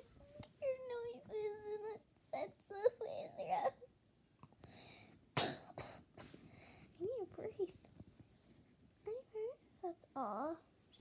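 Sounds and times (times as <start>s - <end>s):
girl coughing: 5.4s - 6.1s.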